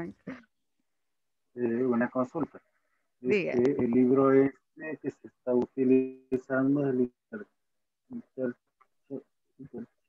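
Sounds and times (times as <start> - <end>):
man speaking haltingly: 1.6 - 2.6, 3.3 - 7.1, 8.1 - 8.5.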